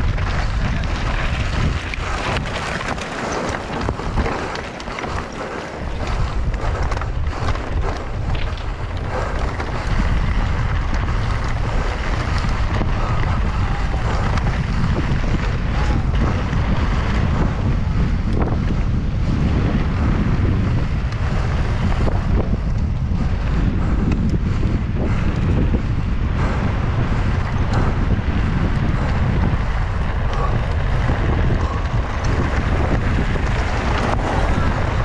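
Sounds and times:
bike tyres rumbling on gravel: 0.0 - 35.0
wind buffeting microphone: 0.0 - 35.0.

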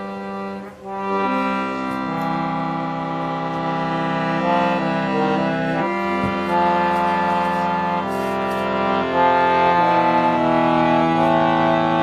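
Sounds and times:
piano accordion chord: 0.0 - 12.0.

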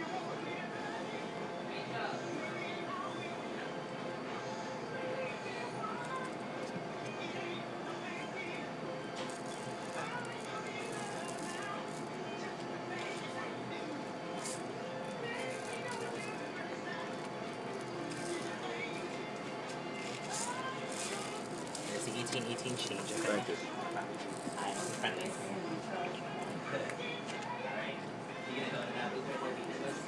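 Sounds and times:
murmur of diners' voices: 0.0 - 30.0.

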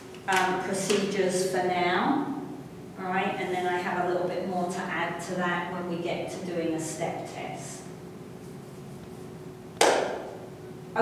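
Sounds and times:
faint steady hum: 0.0 - 11.0
sharp knock: 9.8 - 10.4.

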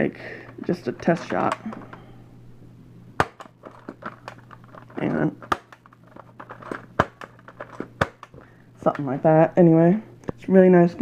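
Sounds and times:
small rattles and rustling: 0.5 - 2.1, 3.4 - 9.3
loud plastic clicks: 3.2 - 8.4.

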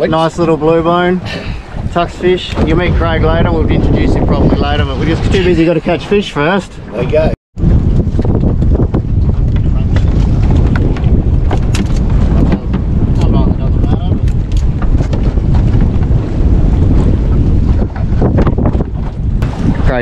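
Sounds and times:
wind buffeting microphone: 0.0 - 20.0
sharp knocks and clicks: 9.5 - 13.3.

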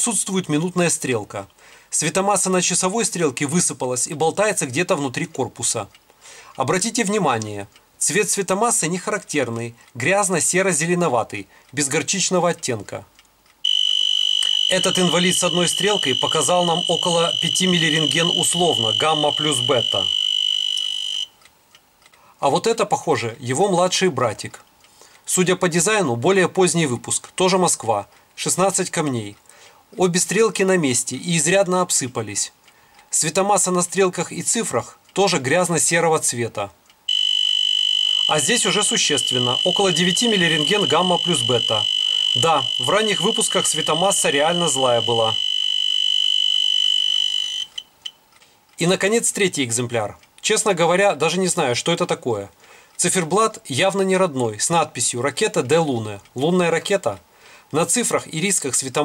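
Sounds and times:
high-pitched dosimeter alarm tone: 13.6 - 21.4, 37.1 - 48.2
short beeps: 13.6 - 21.4, 37.1 - 48.2.

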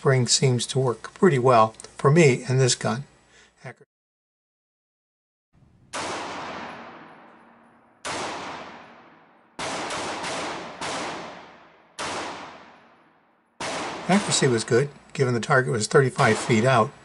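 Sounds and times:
pistol shots with echo: 5.9 - 14.8, 16.2 - 17.0.

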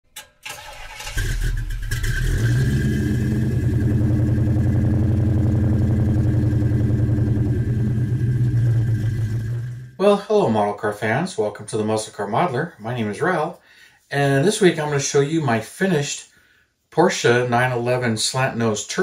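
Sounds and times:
car engine starting and idling: 0.2 - 10.0.

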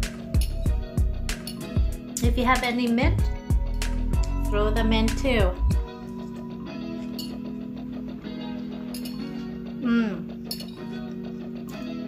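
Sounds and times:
soft plucked guitar music: 0.3 - 12.0
person humming: 9.7 - 10.4.

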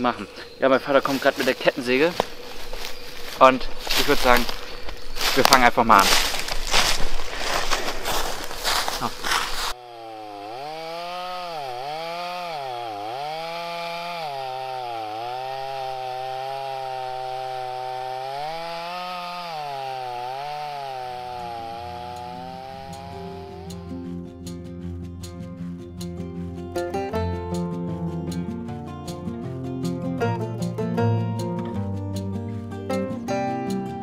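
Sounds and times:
chainsaw cutting through log: 1.0 - 24.2
guitar music: 21.2 - 34.0.

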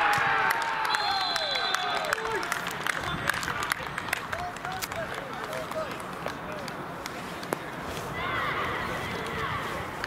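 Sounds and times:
sharp claps: 0.0 - 7.6.

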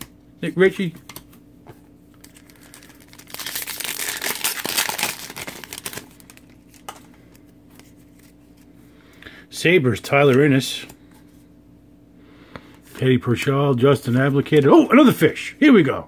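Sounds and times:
foil wrapper crinkling and tearing: 2.2 - 6.9.

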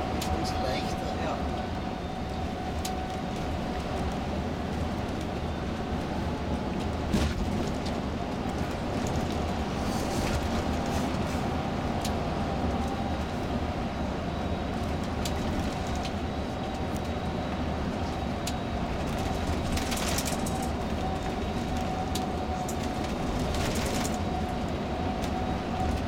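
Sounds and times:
engine and tyres droning on road: 0.0 - 26.0.

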